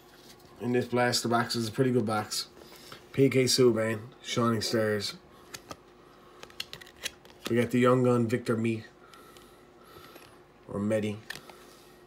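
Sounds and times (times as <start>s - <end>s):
cards clicking and flicking: 5.5s - 7.7s.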